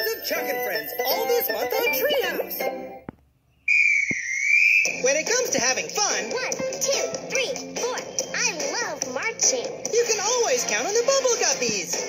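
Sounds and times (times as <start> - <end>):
jingle singing over music: 0.0 - 2.9
shrill whistle blast: 3.7 - 5.0.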